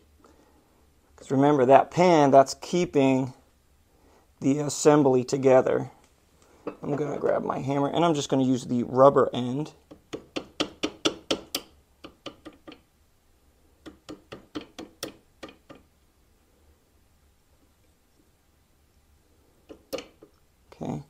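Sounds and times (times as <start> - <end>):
rubber hammer tapping: 9.9 - 12.9, 13.8 - 15.9.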